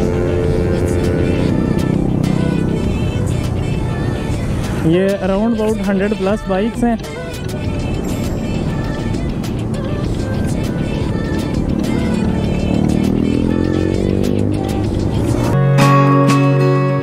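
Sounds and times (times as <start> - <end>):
motorcycle engine accelerating: 0.0 - 4.8, 9.6 - 17.0
motorcycle engines running: 0.0 - 17.0
music playing: 0.0 - 17.0
strummed guitar: 15.5 - 17.0.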